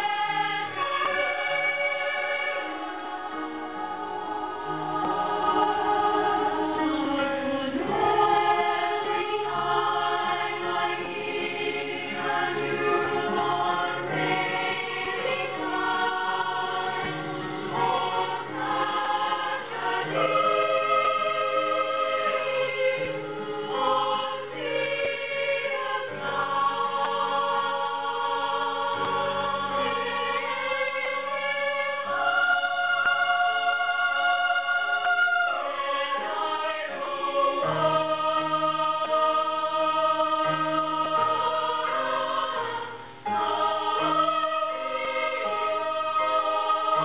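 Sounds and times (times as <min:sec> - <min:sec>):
women's choir singing in harmony: 0:00.0 - 0:47.0.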